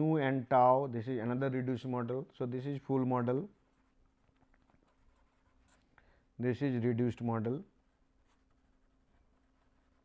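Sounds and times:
faint steady hum: 0:00.0 - 0:10.0
marker pen writing on paper: 0:03.6 - 0:05.9, 0:08.0 - 0:10.0.

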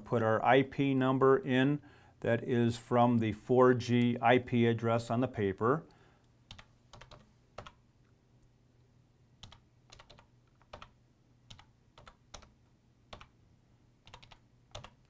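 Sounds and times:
computer keyboard typing: 0:06.5 - 0:07.8, 0:09.4 - 0:13.4, 0:14.0 - 0:15.0.

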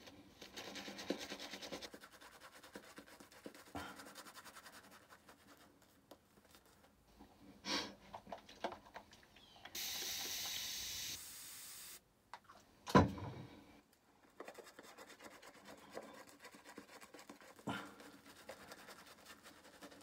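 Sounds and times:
shaving brush scratching on stubble: 0:00.4 - 0:05.9, 0:14.4 - 0:20.0
tap running water: 0:09.8 - 0:10.6.

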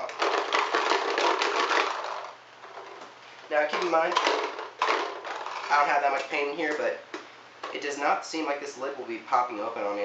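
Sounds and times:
paintballs rattling in hopper: 0:00.0 - 0:06.1.

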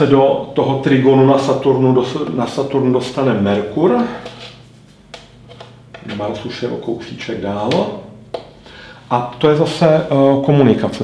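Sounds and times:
low steady hum: 0:00.0 - 0:11.0
marker tapping on whiteboard: 0:05.1 - 0:06.1, 0:07.7 - 0:08.6.

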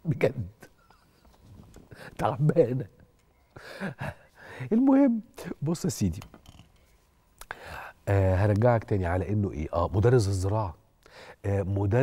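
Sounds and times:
man speaking: 0:00.0 - 0:00.7, 0:02.1 - 0:03.0, 0:04.6 - 0:06.3, 0:08.0 - 0:10.8, 0:11.4 - 0:12.0
soft breathing: 0:01.7 - 0:02.2, 0:03.5 - 0:04.7, 0:07.4 - 0:08.0, 0:11.0 - 0:11.4.

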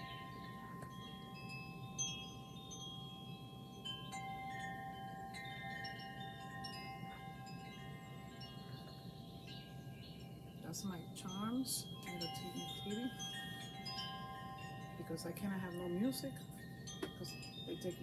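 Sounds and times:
low steady hum: 0:00.0 - 0:18.0
wind chimes ringing softly: 0:00.0 - 0:18.0.

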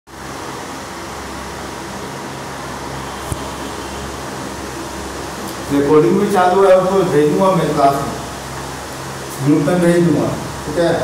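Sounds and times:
room hum and hiss: 0:00.1 - 0:11.0.

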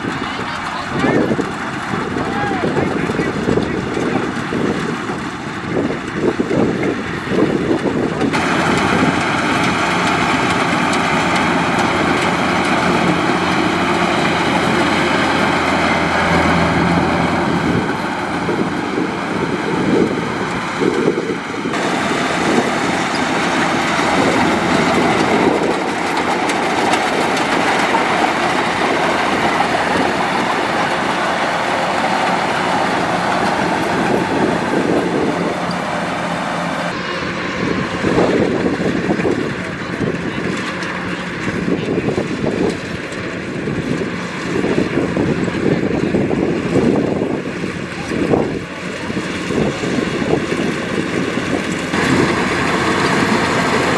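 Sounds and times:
combine harvester running: 0:00.0 - 0:53.9.

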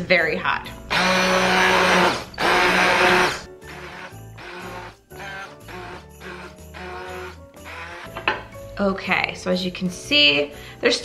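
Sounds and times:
immersion blender running: 0:00.9 - 0:08.1.

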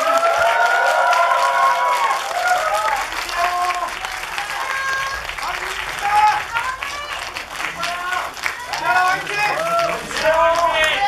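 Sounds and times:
audience applause: 0:00.0 - 0:11.0.

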